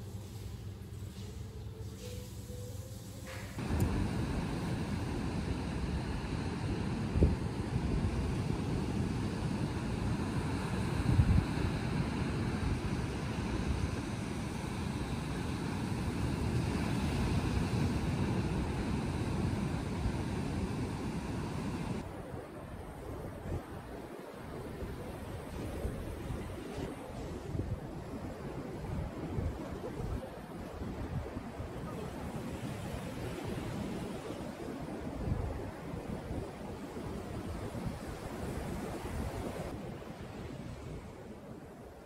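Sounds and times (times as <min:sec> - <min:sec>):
wind buffeting microphone: 0:03.6 - 0:42.0.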